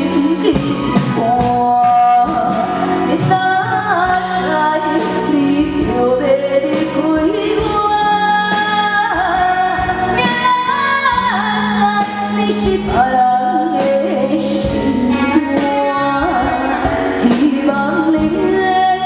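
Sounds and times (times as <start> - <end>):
woman singing through microphone: 0.0 - 19.0.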